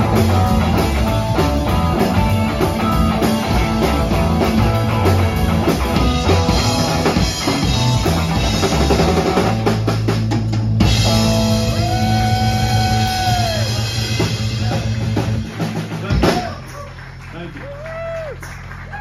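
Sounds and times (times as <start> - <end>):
live rock band playing: 0.0 - 17.4
drum fills: 0.0 - 17.5.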